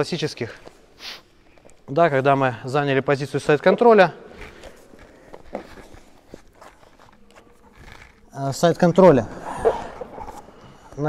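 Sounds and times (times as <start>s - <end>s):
soft rustling: 4.2s - 11.0s
bare feet and knees on mat: 4.3s - 8.3s.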